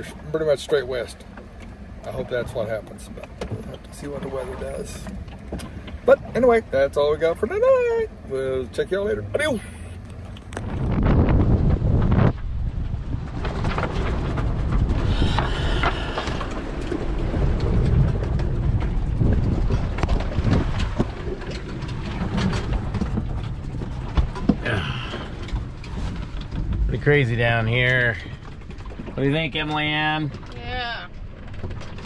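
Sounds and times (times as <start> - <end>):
boat and gear knocking: 0.0 - 32.0
gale wind and heavy seas: 0.0 - 32.0.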